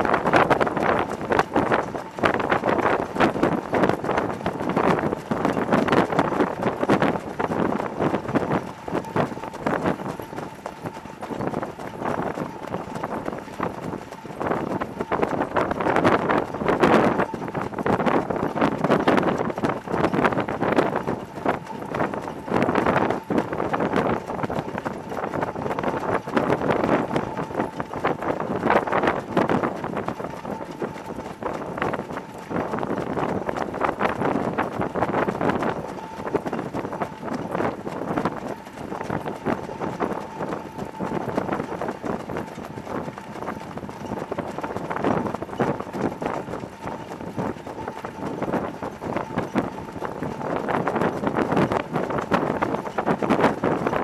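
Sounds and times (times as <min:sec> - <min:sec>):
horse hoofbeats on dirt: 0:00.5 - 0:54.0.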